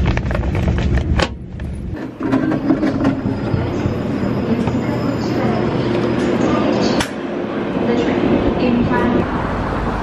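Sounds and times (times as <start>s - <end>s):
train rumble: 0.0s - 10.0s.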